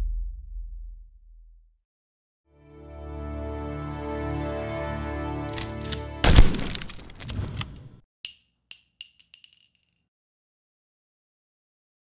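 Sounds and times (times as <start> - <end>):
glass shards tinkling: 8.3 - 10.1.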